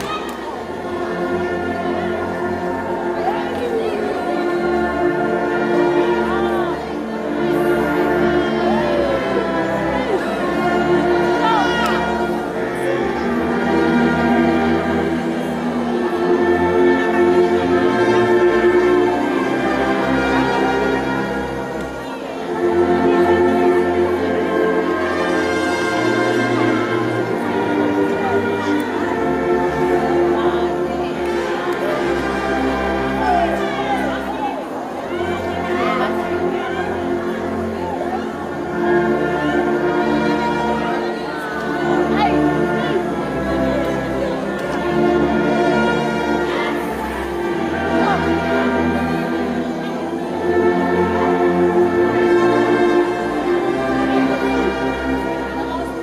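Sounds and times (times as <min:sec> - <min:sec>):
brass band playing hymn: 0:00.0 - 0:56.0.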